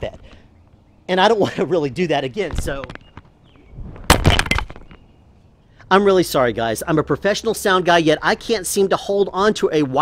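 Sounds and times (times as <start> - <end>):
transmitter hitting concrete: 2.4 - 5.1
small knocks bouncing: 4.1 - 5.1.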